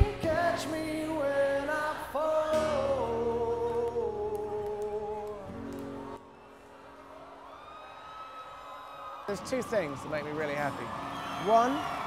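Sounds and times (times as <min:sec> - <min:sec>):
man singing with vibrato: 0:00.0 - 0:05.6
acoustic guitar: 0:00.0 - 0:07.0.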